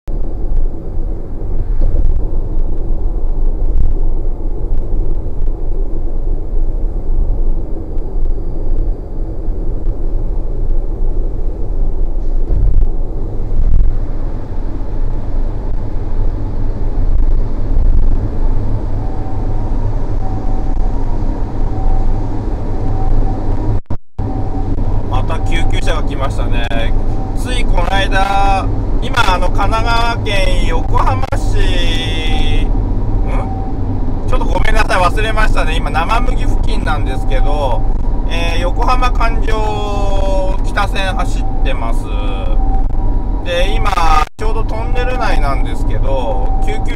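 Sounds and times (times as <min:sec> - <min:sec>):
car road and engine rumble: 0:00.1 - 0:46.9.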